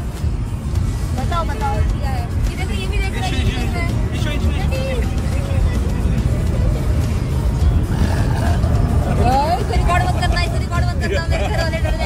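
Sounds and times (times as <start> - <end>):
car road and engine rumble: 0.0 - 12.0
music: 0.0 - 12.0.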